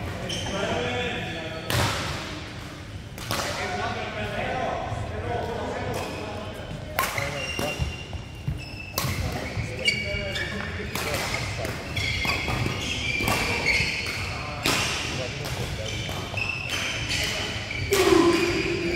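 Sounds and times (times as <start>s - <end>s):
shoes squeaking on court: 0.2s - 0.7s, 7.1s - 14.6s, 15.5s - 18.9s.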